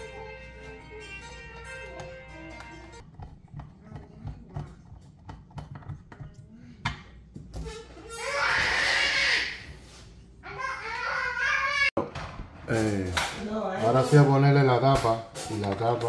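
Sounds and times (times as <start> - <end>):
music: 0.0 - 3.0.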